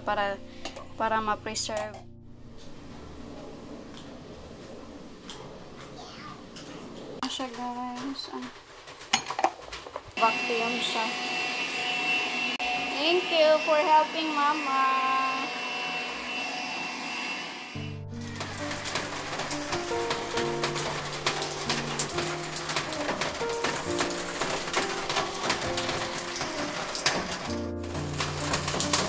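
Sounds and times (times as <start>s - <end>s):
handheld vacuum cleaner running: 10.2s - 29.0s.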